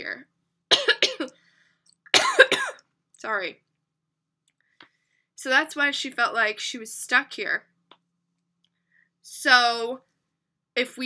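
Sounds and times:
woman coughing: 0:00.7 - 0:01.4, 0:02.1 - 0:02.8.

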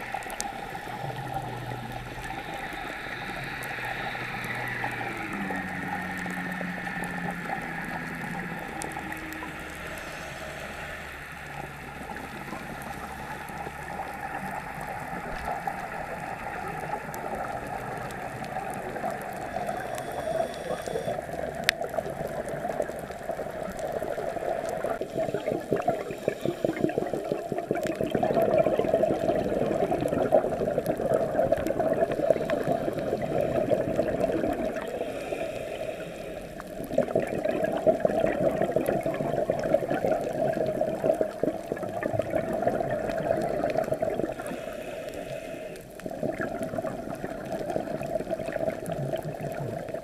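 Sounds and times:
regulator bubbles gurgling underwater: 0:00.0 - 0:50.0.

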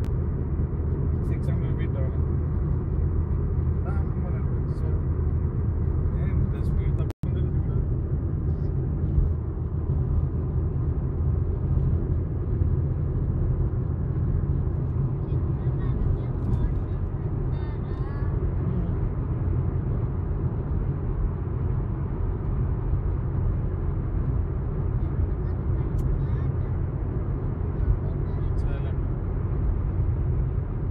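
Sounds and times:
car driving interior rumble: 0:00.0 - 0:30.9.

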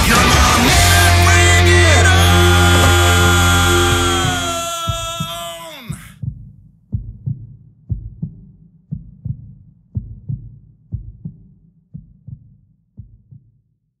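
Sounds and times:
heartbeat thumps: 0:00.0 - 0:13.5.

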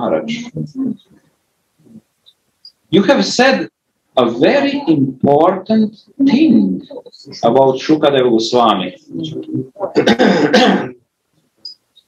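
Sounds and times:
man clearing his throat: 0:09.9 - 0:11.0.

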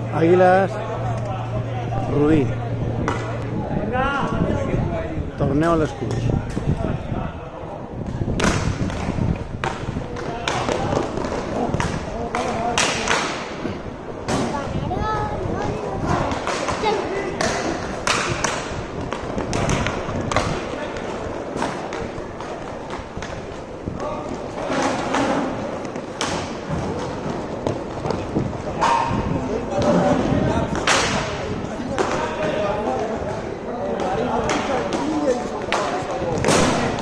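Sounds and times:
hockey sticks hitting puck: 0:08.4 - 0:13.6, 0:16.2 - 0:37.0.

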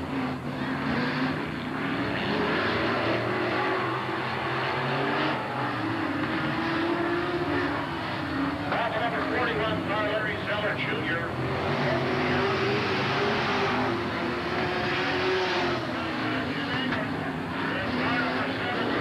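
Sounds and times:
race car engines running: 0:00.0 - 0:19.0.

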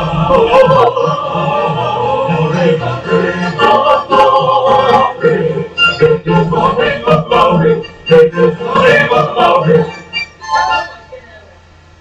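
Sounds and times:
choir singing: 0:00.0 - 0:11.1.

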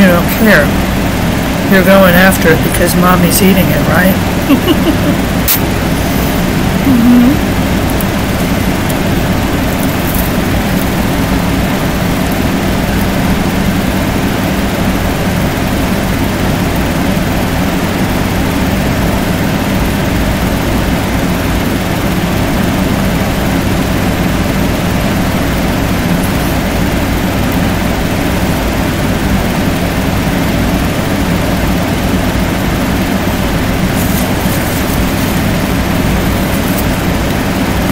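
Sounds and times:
mechanical drone with low hum: 0:00.0 - 0:37.9.

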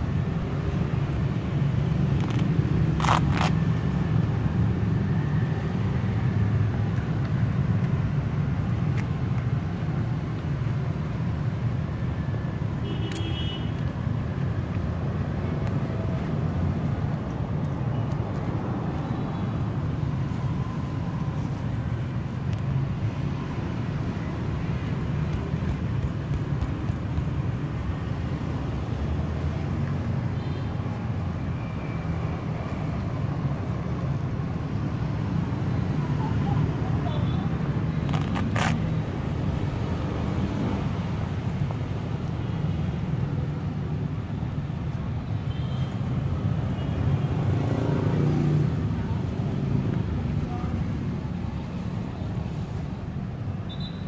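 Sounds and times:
road traffic rumble: 0:00.0 - 0:54.0.

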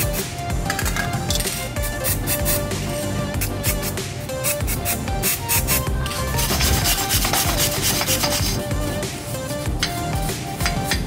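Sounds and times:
background music: 0:00.0 - 0:11.0
wire brush scrubbing metal: 0:01.4 - 0:09.7.

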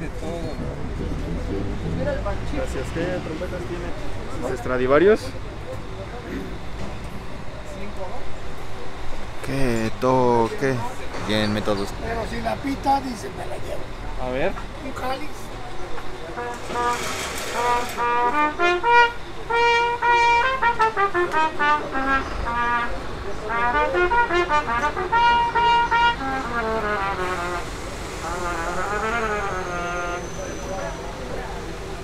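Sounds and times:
trumpet playing short phrases: 0:00.6 - 0:03.0, 0:16.4 - 0:30.3.

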